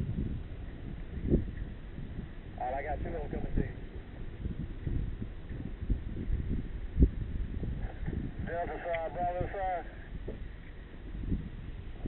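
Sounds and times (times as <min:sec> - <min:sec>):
rumble on camera microphone: 0:00.0 - 0:12.0.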